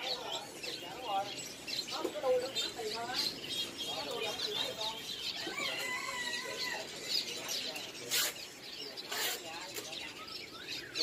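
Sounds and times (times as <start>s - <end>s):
birds chirping and whistling: 0.0s - 11.0s.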